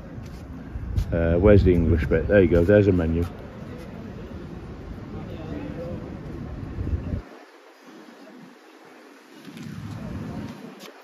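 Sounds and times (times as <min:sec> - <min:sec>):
wind buffeting microphone: 0:00.0 - 0:05.2, 0:05.8 - 0:07.5
faint outdoor background noise: 0:00.0 - 0:11.0.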